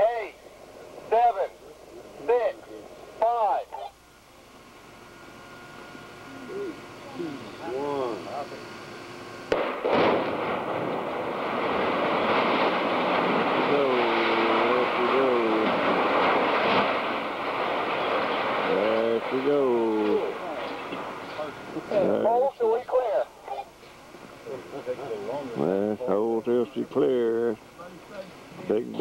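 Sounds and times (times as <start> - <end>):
tower collapsing rumble: 9.5 - 21.2
demolition blast: 9.5 - 21.7.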